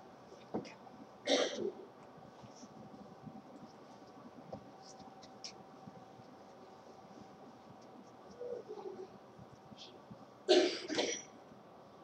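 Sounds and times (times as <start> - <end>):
person coughing: 1.3 - 1.8, 10.5 - 11.3.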